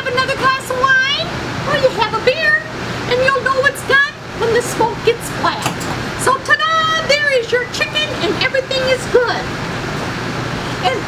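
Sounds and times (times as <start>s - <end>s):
woman talking animatedly: 0.0s - 9.5s.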